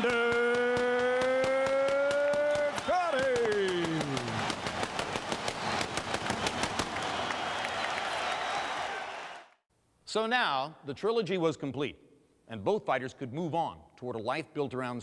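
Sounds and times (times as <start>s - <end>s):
ring announcer's drawn-out call: 0.0s - 4.4s
crowd cheering and clapping: 0.0s - 9.6s.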